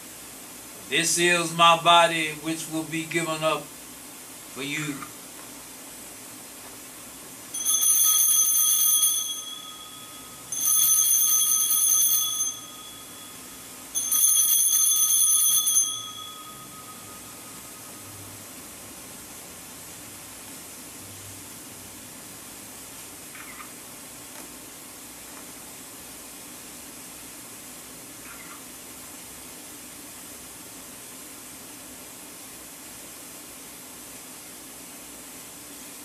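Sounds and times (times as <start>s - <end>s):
altar bells ringing: 7.5s - 18.2s.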